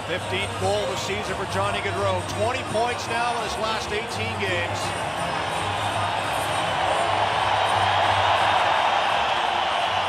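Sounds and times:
arena crowd noise: 0.0s - 10.0s
music: 0.0s - 10.0s.

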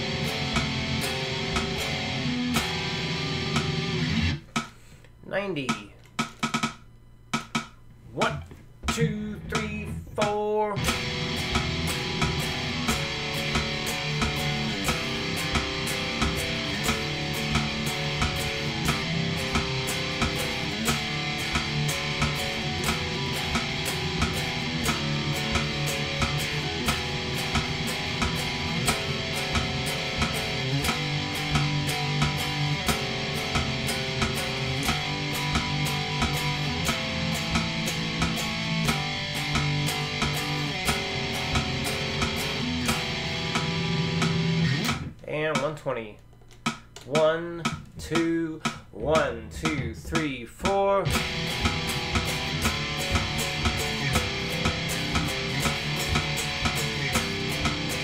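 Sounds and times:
metronome click: 0.0s - 4.7s, 5.6s - 58.0s
electric guitar riff: 0.0s - 5.8s, 8.2s - 45.8s, 46.8s - 58.0s.

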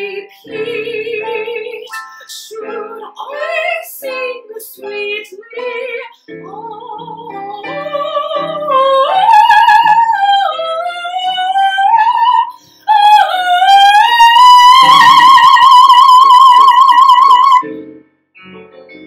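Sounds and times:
woman singing: 0.0s - 17.6s
piano accompaniment: 0.0s - 19.0s.

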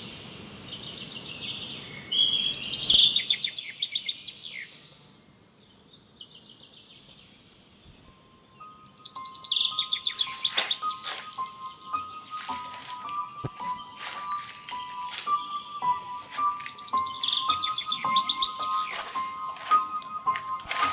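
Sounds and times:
birds chirping in trills: 0.0s - 20.9s
steady high tones: 8.0s - 20.9s.

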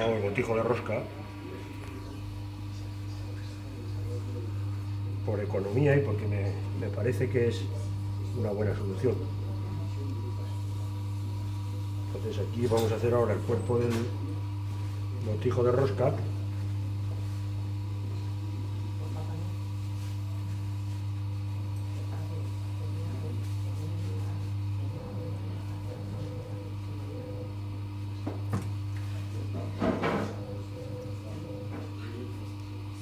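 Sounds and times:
potter's wheel humming: 0.0s - 33.0s.

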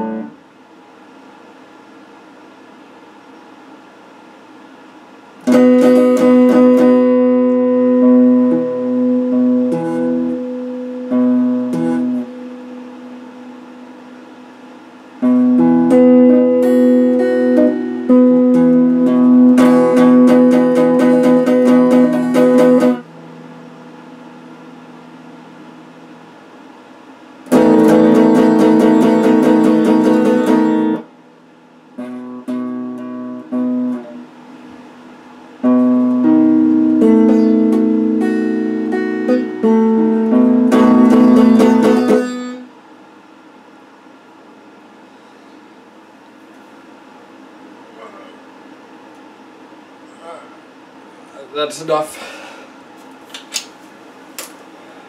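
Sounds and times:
electric guitar chords and notes: 0.0s - 0.4s, 5.4s - 14.4s, 15.2s - 26.7s, 27.4s - 42.7s.

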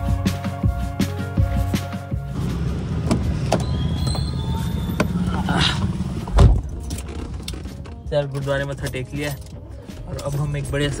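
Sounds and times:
background music: 0.0s - 11.0s
car engine and road rumble: 0.0s - 11.0s.

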